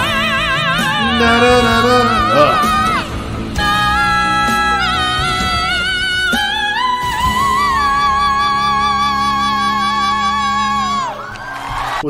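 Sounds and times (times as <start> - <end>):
low sustained accompaniment: 0.1 - 6.3
audience cheering: 0.6 - 3.2, 11.0 - 12.0
man singing high note: 0.8 - 3.1.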